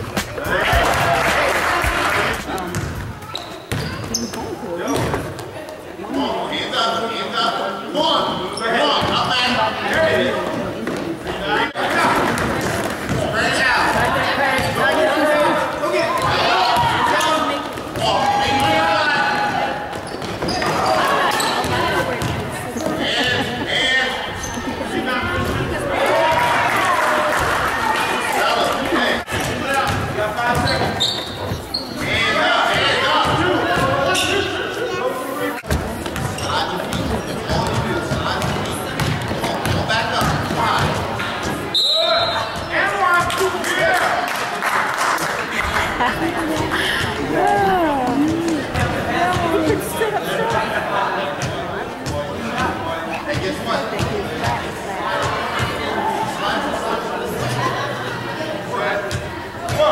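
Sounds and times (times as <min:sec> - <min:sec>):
spectators' voices: 0:00.0 - 0:59.9
basketball bouncing on wooden court: 0:02.7 - 0:05.2, 0:35.7 - 0:41.0.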